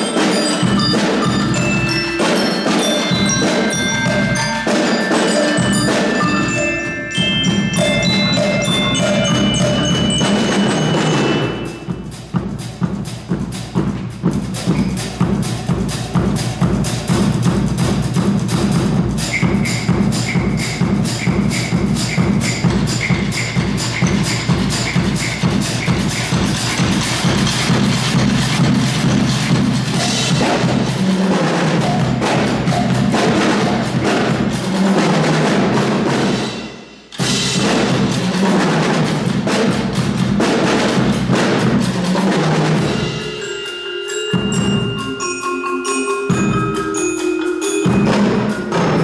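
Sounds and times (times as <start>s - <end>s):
marimba notes: 0.0s - 13.4s, 14.4s - 36.2s, 41.8s - 49.0s
snare and bass drums playing: 0.0s - 43.6s, 46.3s - 49.0s.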